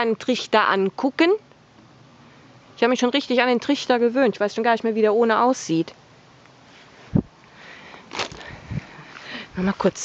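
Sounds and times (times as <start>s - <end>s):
camera handling rustling: 8.1s - 8.6s.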